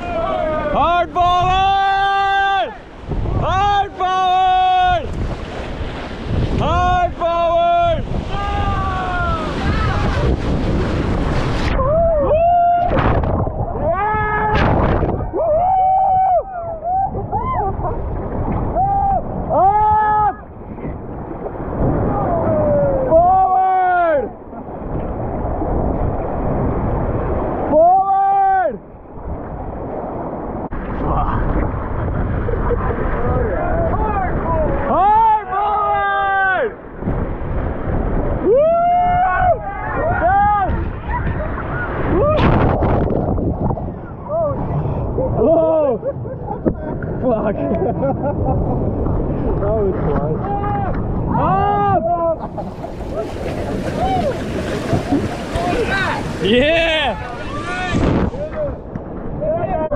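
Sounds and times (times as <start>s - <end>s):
people yelling and whooping: 0.0s - 5.1s, 6.6s - 10.5s, 11.7s - 20.5s, 22.0s - 24.4s, 38.4s - 42.6s, 44.0s - 46.6s, 50.3s - 58.8s
whitewater rapids rushing: 0.0s - 16.0s, 52.4s - 58.8s.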